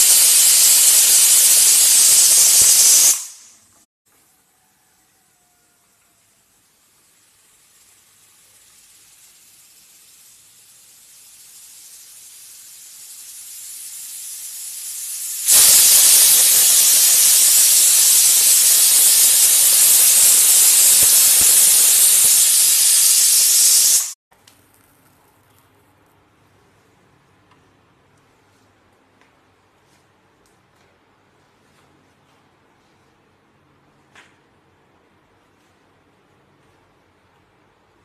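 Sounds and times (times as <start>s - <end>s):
pressure cooker whistling: 0.0s - 3.6s, 8.4s - 24.2s
pressure cooker steam hiss: 0.0s - 3.7s, 6.1s - 24.2s.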